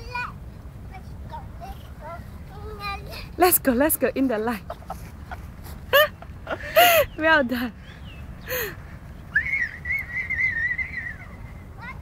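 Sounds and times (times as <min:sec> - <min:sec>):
person whistling high note: 0:09.3 - 0:11.3.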